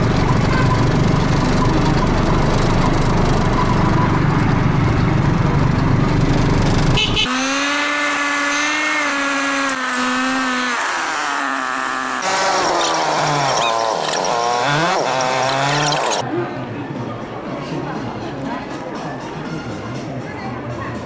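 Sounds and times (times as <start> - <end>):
low motor and road rumble: 0.0 - 16.3
high motor whine: 8.6 - 16.2.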